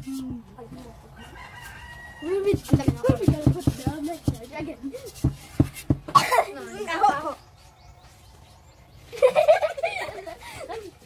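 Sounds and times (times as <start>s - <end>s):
rooster crowing: 1.1s - 2.5s.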